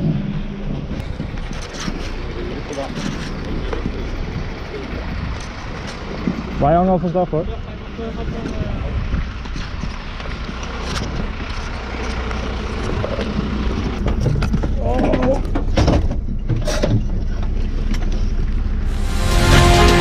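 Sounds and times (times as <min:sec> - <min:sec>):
diesel engine idling: 0:00.0 - 0:20.0
voices: 0:02.2 - 0:09.2.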